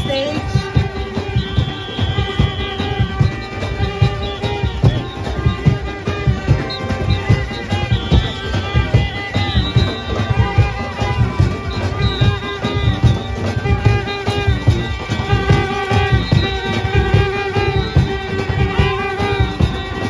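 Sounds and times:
brass horns and sousaphone: 0.0s - 20.0s
hand drums fast beat: 0.0s - 20.0s.

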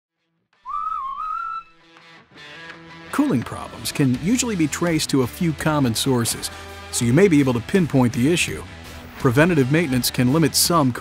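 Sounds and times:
whistle-like wavering tone: 0.7s - 1.8s.

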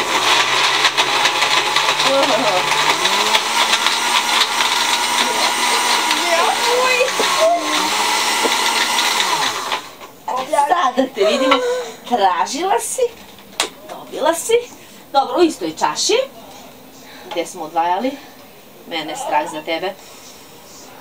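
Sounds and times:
electric blender running: 0.0s - 10.6s.

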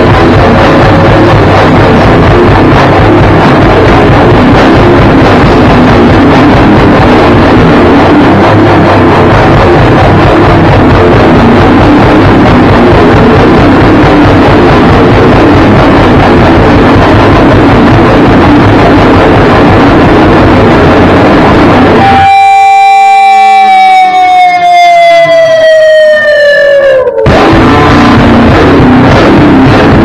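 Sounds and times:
rock band playing: 0.0s - 26.1s, 26.8s - 30.0s
sustained electric guitar note: 0.0s - 30.0s.

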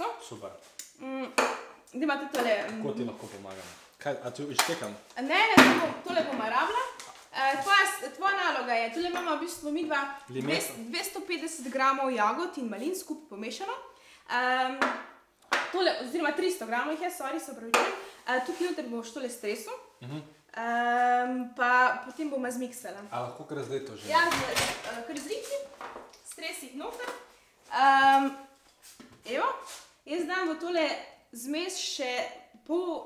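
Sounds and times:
woman speaking: 0.0s - 0.2s, 1.0s - 1.4s, 2.0s - 2.8s, 5.2s - 14.9s, 15.7s - 19.9s, 20.5s - 23.1s, 24.0s - 25.7s, 26.3s - 28.5s, 29.2s - 33.0s
person speaking: 10.3s - 10.9s, 20.0s - 20.3s.

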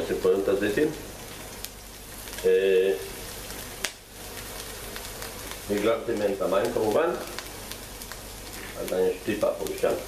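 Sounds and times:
onion frying in oil: 0.0s - 10.0s.

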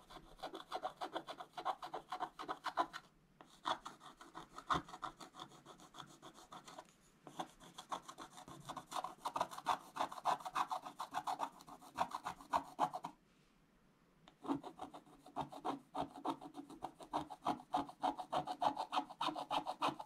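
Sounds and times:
stylus scratching coated paper: 0.0s - 13.1s, 14.4s - 20.0s.

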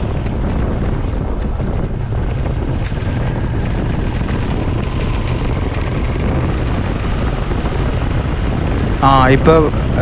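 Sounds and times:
motorcycle engine: 0.0s - 10.0s
wind buffeting microphone: 0.0s - 10.0s.

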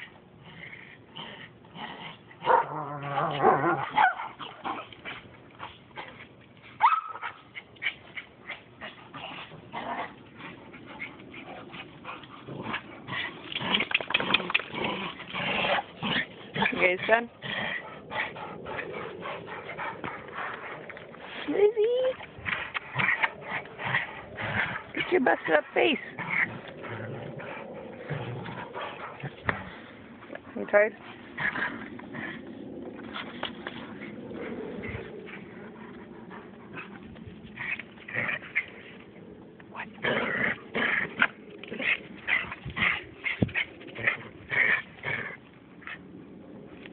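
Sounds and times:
dog panting: 7.2s - 13.6s, 15.7s - 38.9s.

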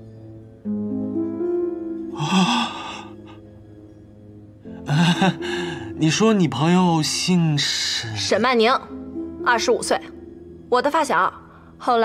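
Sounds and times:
soft background music: 0.0s - 12.0s
man gasping: 2.2s - 3.4s.

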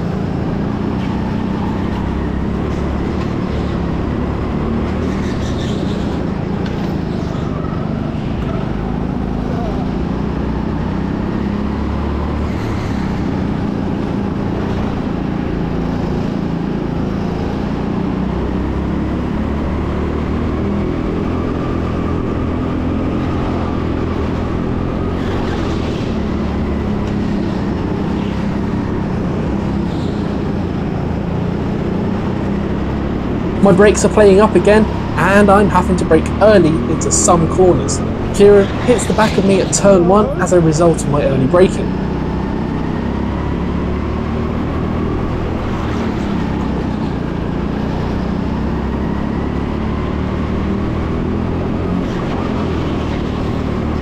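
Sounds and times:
go-kart engine at race pace: 0.0s - 54.0s.

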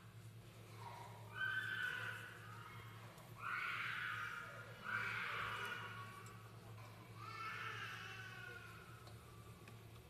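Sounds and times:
low steady hum: 0.0s - 10.0s
young child crying: 7.1s - 9.2s.

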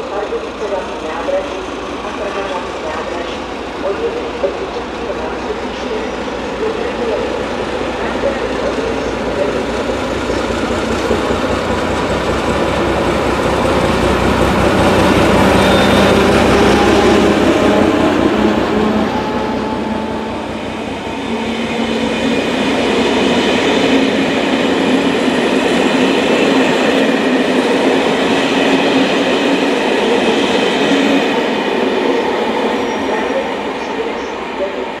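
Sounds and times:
diesel locomotive engine: 0.0s - 35.0s.

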